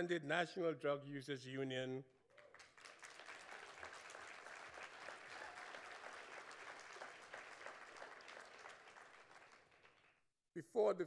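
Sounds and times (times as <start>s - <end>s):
audience applauding: 2.4s - 10.2s.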